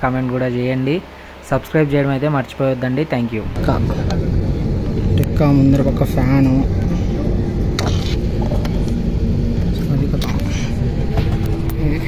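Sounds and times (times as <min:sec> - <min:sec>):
low cabin rumble: 0:03.3 - 0:12.0
passenger chatter: 0:03.4 - 0:12.0.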